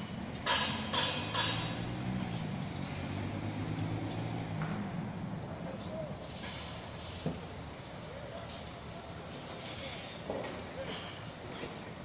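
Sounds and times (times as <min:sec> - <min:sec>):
engine humming steadily: 0:00.0 - 0:12.0.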